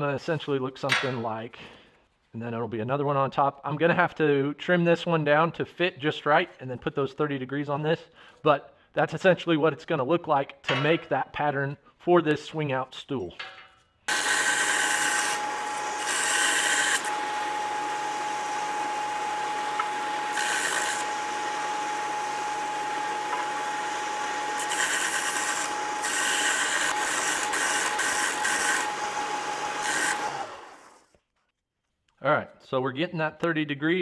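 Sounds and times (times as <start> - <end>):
steel grinding on sander: 14.1 - 31.0
belt sander whine: 14.1 - 31.1.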